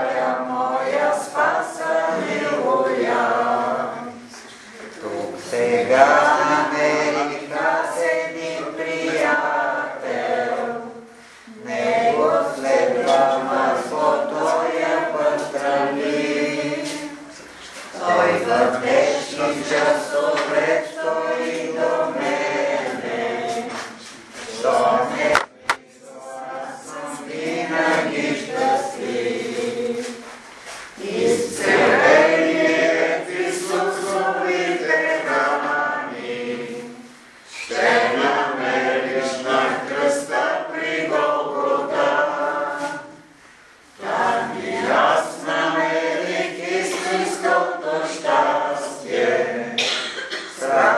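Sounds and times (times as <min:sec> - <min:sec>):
group singing a hymn: 0:00.0 - 0:50.9.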